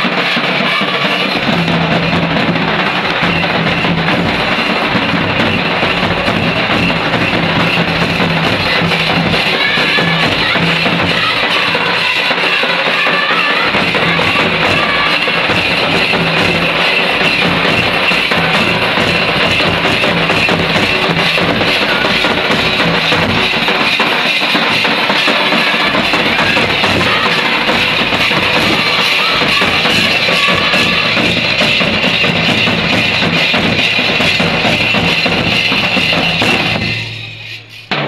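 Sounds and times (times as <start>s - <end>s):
voices singing: 0.0s - 37.8s
barrel drums beaten: 0.0s - 38.0s.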